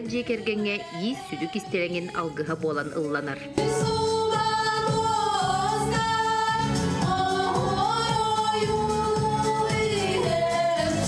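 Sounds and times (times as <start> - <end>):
women singing into microphones: 0.0 - 11.0.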